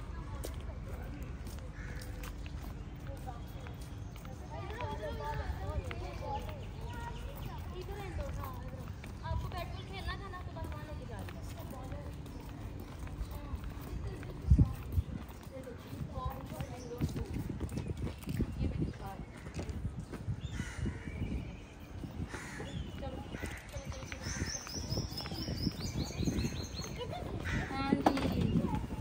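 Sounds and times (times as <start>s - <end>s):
indistinct background talk: 0.0s - 29.0s.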